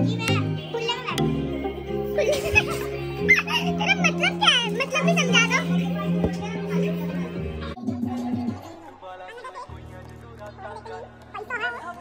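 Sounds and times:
background music with held note: 0.0s - 7.8s
children's excited voices: 2.2s - 7.4s.

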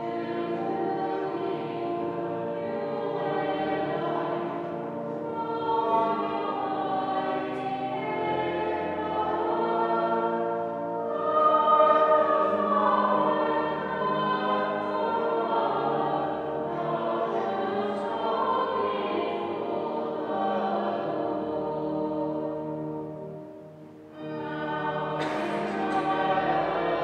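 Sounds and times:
choir singing: 0.0s - 27.0s.

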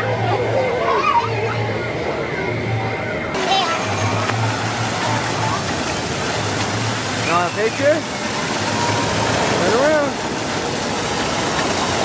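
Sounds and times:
amusement park voices and music: 0.0s - 10.3s
fountain water splashing: 3.4s - 12.0s.

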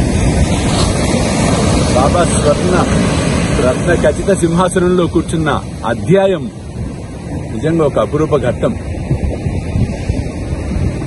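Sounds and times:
surf: 0.0s - 11.0s
wind rumbling on microphone: 0.0s - 11.0s.

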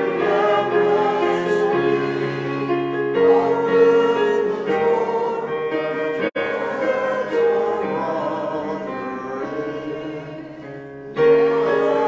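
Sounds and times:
congregation singing a hymn: 0.0s - 12.0s
digital piano accompaniment: 0.0s - 12.0s.

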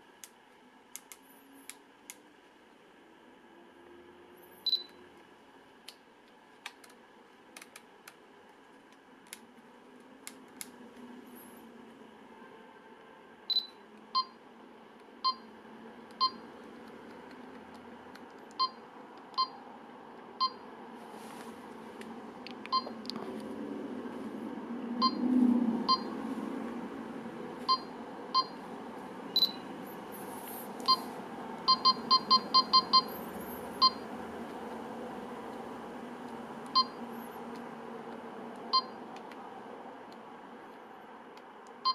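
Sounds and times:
camera electronic beeps: 4.6s - 5.0s, 29.4s - 29.6s, 31.7s - 33.2s.

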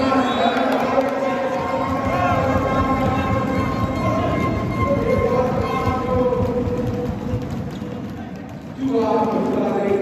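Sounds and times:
crowd noise: 0.0s - 10.0s
fast pulsing drumbeat: 0.7s - 10.0s
horns sounding long notes: 1.2s - 6.4s.

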